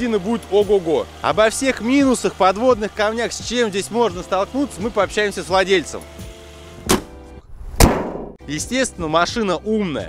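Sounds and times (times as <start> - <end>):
car bonnet slamming shut: 6.8 - 7.2
sharp hit: 7.5 - 8.4.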